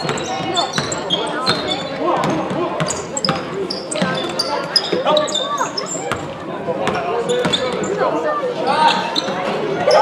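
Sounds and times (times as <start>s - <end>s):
sneaker squeaks: 0.0s - 10.0s.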